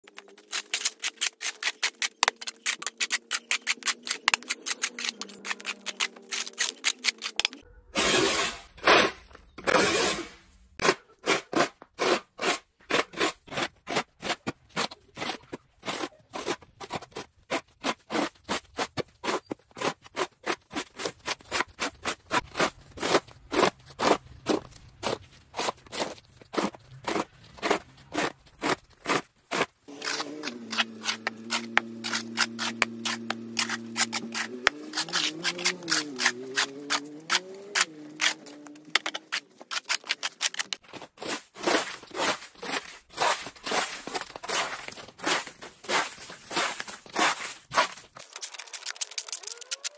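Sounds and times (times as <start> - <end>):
snow shovel scraping concrete: 0.5 - 48.7.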